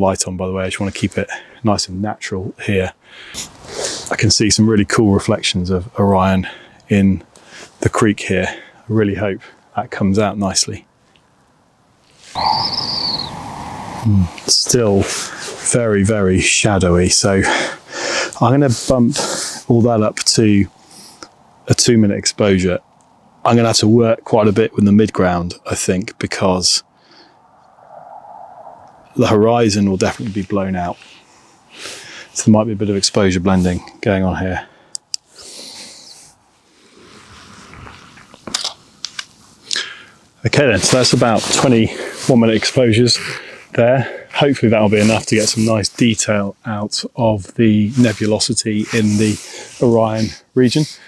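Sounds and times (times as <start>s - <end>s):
bird calling: 12.2s - 15.5s
soft handling rustle: 44.4s - 46.5s, 47.3s - 50.8s.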